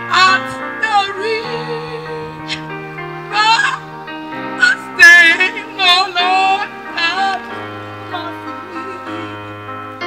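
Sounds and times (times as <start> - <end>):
woman singing into a microphone: 0.0 - 3.9, 4.6 - 9.5
held musical accompaniment: 0.0 - 10.0.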